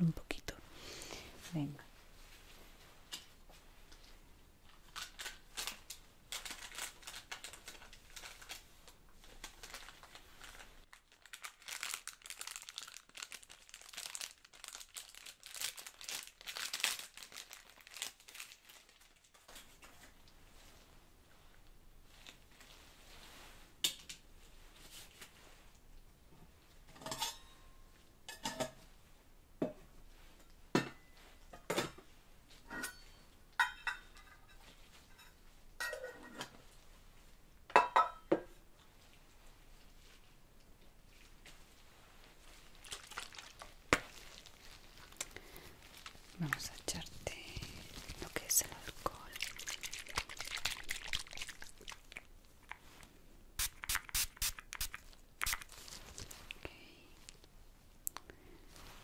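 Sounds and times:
rustling and crinkling: 1.4s - 27.2s, 34.1s - 37.4s, 38.7s - 53.2s, 53.8s - 59.0s.

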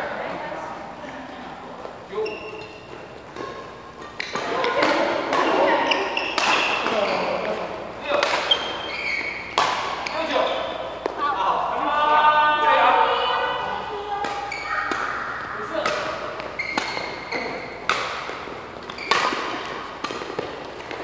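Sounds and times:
court shoes squeaking: 1.7s - 11.4s, 13.6s - 21.0s
rackets hitting shuttlecock: 2.2s - 11.2s, 14.2s - 21.0s.

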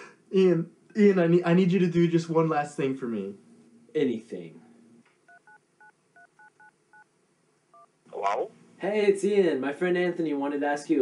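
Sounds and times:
phone keypad touch-tone beeps: 5.3s - 5.6s, 6.2s - 7.1s.

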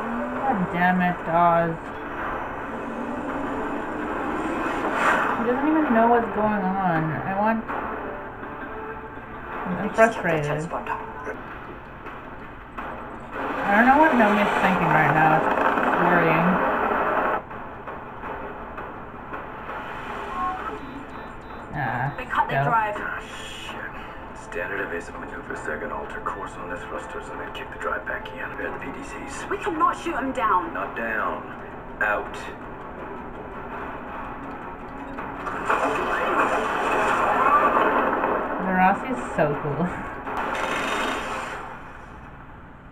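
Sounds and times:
soundtrack score and effects: 0.0s - 42.7s.

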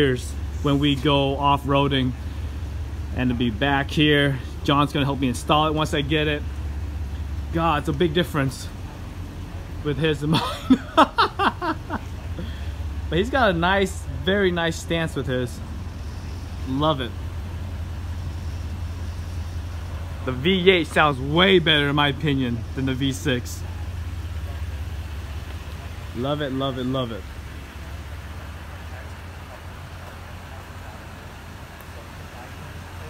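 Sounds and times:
truck engine idling: 0.0s - 33.0s.

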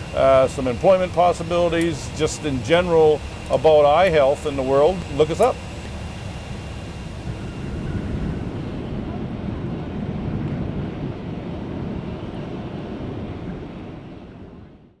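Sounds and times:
low outdoor rumble: 0.0s - 15.0s
wind buffeting microphone: 0.0s - 15.0s.

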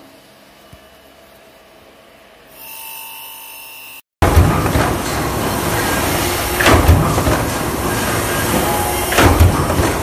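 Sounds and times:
stamping press heavy thud: 4.2s - 5.3s, 6.6s - 7.7s, 9.1s - 10.0s.

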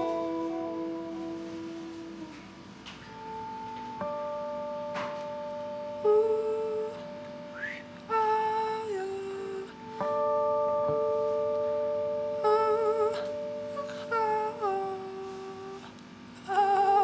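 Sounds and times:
woman singing vocalise: 0.0s - 3.2s, 5.9s - 10.2s, 12.3s - 17.0s
electric guitar note ringing: 0.0s - 17.0s.

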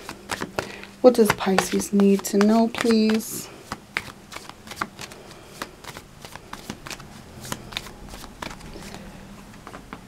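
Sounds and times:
cards being shuffled by hand: 0.0s - 10.0s.

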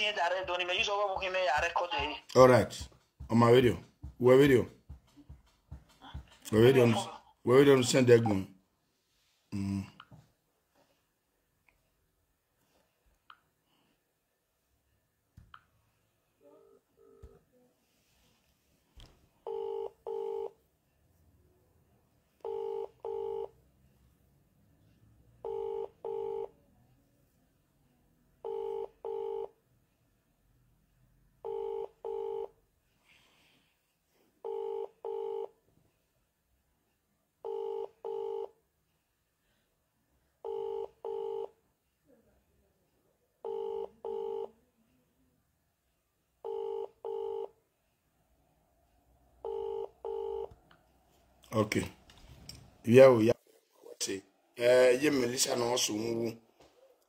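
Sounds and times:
telephone ringback tone: 19.5s - 20.6s, 22.4s - 23.5s, 25.4s - 26.5s, 28.4s - 29.6s, 31.4s - 32.5s, 34.4s - 35.5s, 37.4s - 38.5s, 40.4s - 41.6s, 43.4s - 44.5s, 46.4s - 47.5s, 49.4s - 50.5s.

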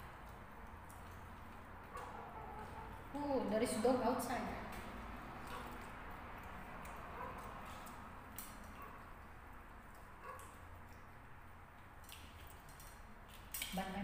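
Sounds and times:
quiet chewing: 4.7s - 13.7s.

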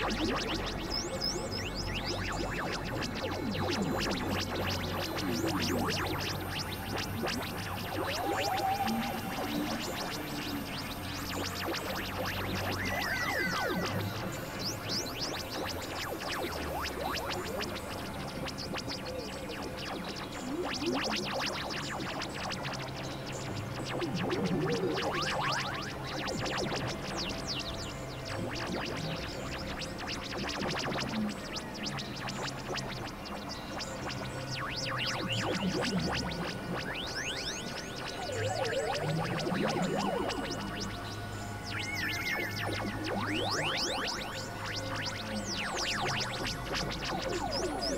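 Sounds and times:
high-pitched synth sweeps: 0.0s - 22.0s, 34.8s - 47.9s
dense noisy electronic texture: 0.0s - 47.9s
low synthesizer drone notes: 0.0s - 47.9s.

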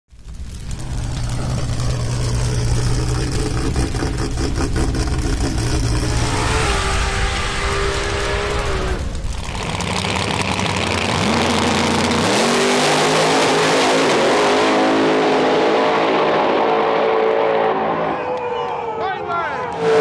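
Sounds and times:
race car engine revving: 0.6s - 18.2s, 19.7s - 20.0s.

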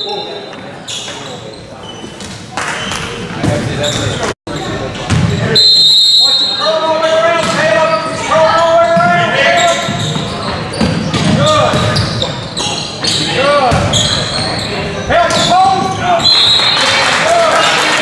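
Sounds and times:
voices shouting in a gym: 2.6s - 18.0s.

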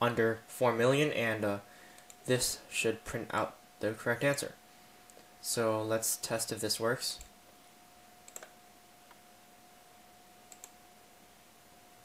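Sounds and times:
computer mouse clicks: 2.0s - 2.2s, 8.2s - 9.2s, 10.5s - 10.8s.

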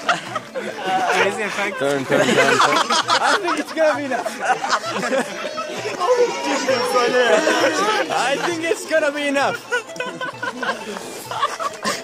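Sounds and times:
men laughing: 0.0s - 12.0s
young men chattering: 0.0s - 12.0s.

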